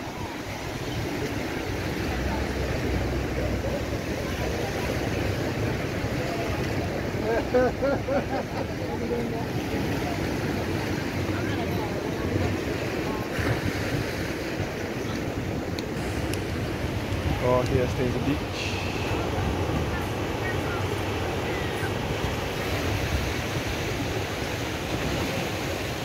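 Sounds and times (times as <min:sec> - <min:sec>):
people chatting: 0:00.0 - 0:13.6, 0:17.2 - 0:22.2
sea surf: 0:00.0 - 0:26.0.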